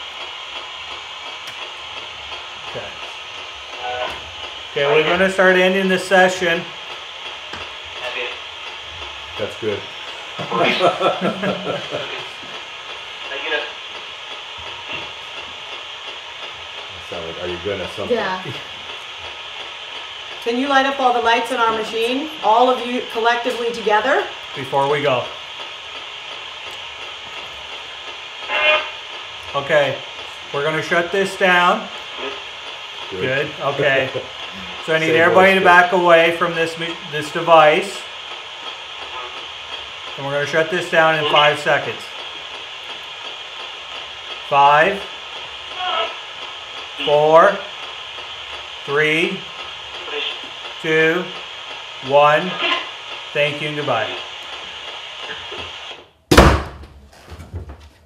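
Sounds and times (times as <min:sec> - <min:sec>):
radio static hiss: 0:00.1 - 0:56.2.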